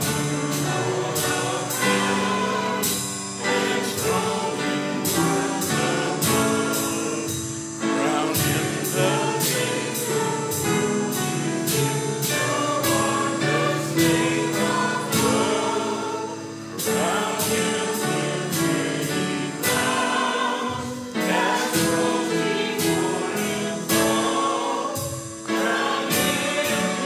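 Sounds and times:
congregation singing a hymn: 0.0s - 27.0s
instrumental accompaniment: 0.0s - 27.0s.

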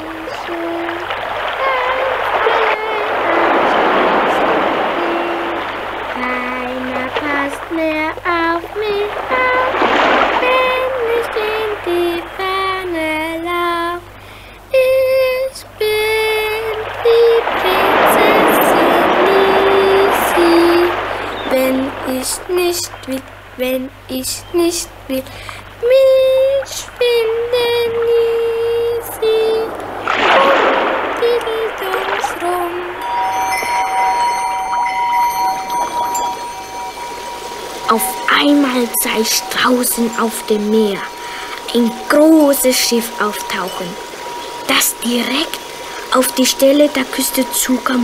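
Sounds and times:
girl singing: 0.0s - 48.0s
sea surf: 0.0s - 48.0s
steady hiss: 0.0s - 48.0s
music with high held notes: 32.8s - 47.2s.

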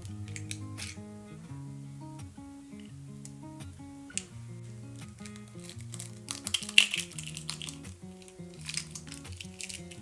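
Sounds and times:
eggshell cracking: 0.0s - 1.0s, 2.8s - 10.0s
background music: 0.0s - 10.0s.

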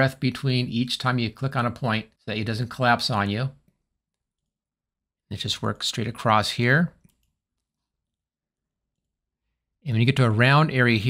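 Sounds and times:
man speaking: 0.0s - 3.6s, 5.3s - 7.0s, 9.8s - 11.0s.

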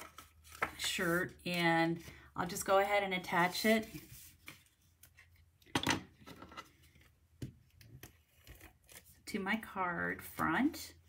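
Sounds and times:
paper rustling: 3.4s - 5.4s.

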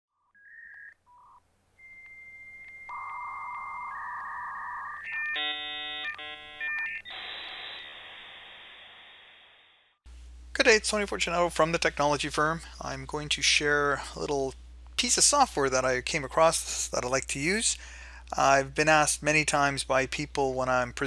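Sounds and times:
modem dialing beeps: 1.1s - 7.9s
modem hiss: 2.0s - 20.3s.

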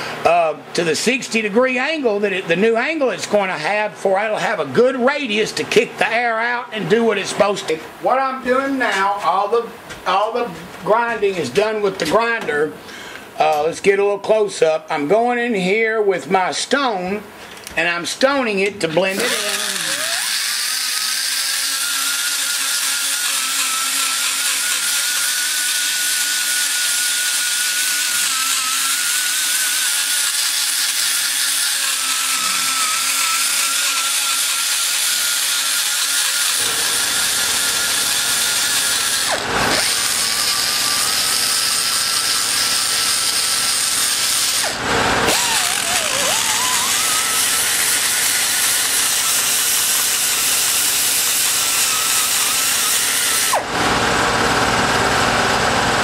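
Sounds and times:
die grinder whining: 19.0s - 56.0s.

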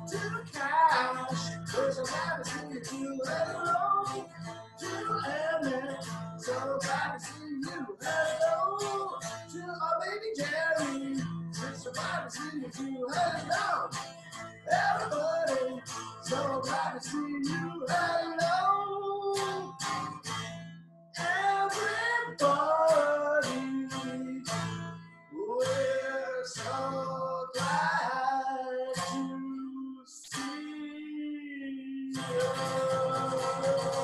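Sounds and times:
man singing: 0.0s - 20.2s, 21.2s - 34.0s
strummed guitar: 0.0s - 34.0s.

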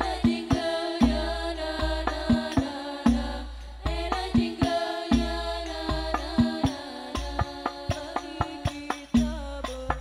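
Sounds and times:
frame drums playing: 0.0s - 10.0s
women singing: 0.0s - 10.0s.

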